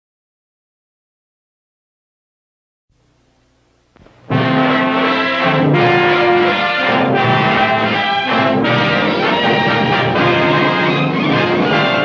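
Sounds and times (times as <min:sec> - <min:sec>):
brass fanfare chords: 0:04.1 - 0:12.0.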